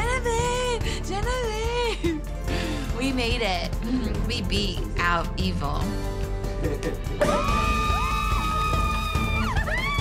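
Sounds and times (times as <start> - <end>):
background music: 0.0 - 10.0
women screaming in celebration: 7.2 - 10.0.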